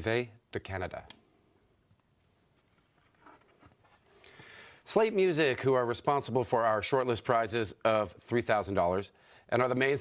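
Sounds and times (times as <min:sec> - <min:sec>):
stiff card rustling and scraping: 0:02.5 - 0:04.2.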